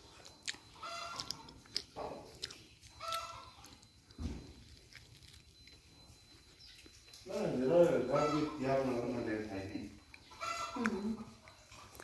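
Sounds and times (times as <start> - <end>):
chicken call: 8.1 - 8.7, 10.3 - 11.0.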